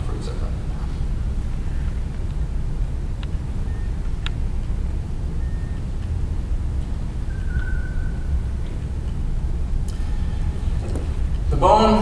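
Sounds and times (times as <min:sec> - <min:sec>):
low rumble of hall noise: 0:00.0 - 0:12.0
faint high beeps: 0:03.6 - 0:04.2, 0:05.4 - 0:05.9, 0:07.2 - 0:08.5.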